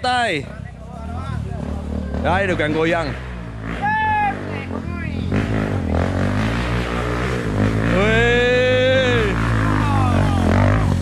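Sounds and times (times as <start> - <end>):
person shouting: 3.8 - 4.5, 8.0 - 10.6.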